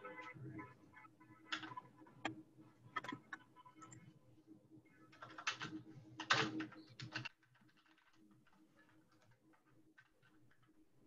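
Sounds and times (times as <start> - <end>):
typing on computer keyboard: 5.1 - 10.8.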